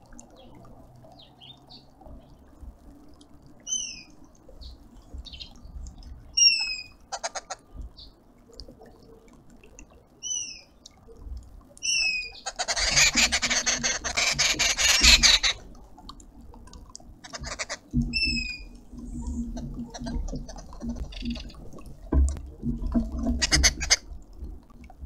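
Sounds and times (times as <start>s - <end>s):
birds harsh chattering: 11.9s - 15.6s, 17.2s - 21.7s.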